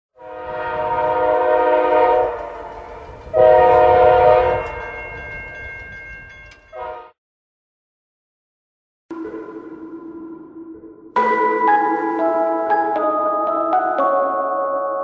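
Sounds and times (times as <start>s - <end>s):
train horn blasts: 0.2s - 4.8s, 6.7s - 7.2s.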